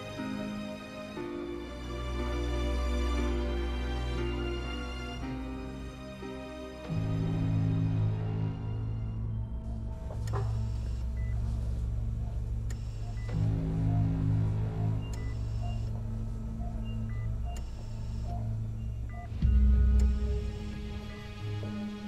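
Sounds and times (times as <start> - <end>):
dark low score drone: 0.0 - 22.0
patient monitor beeping: 9.2 - 21.9.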